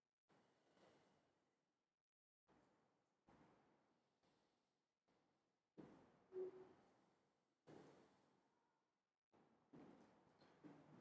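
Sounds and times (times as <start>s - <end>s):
brief low tone: 6.4s - 6.7s.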